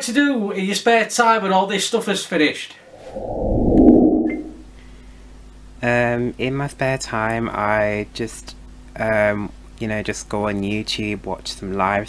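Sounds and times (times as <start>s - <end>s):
muffled rush of air on microphone: 2.9s - 4.8s.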